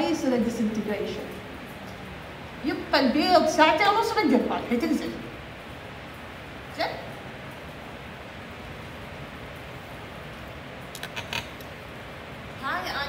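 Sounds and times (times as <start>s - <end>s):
room tone hiss: 0.0s - 13.0s
quick clicks: 10.9s - 11.7s.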